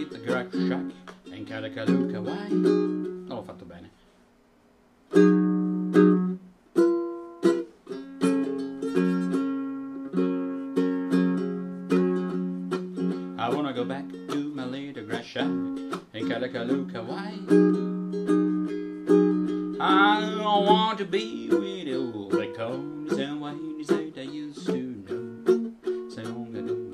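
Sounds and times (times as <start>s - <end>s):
ukulele strumming: 0.0s - 3.8s, 5.1s - 26.9s.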